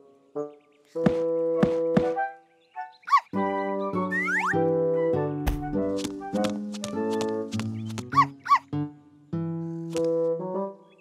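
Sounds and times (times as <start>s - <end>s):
cartoon background music: 0.0s - 11.0s
cartoon dog barking: 8.1s - 8.7s.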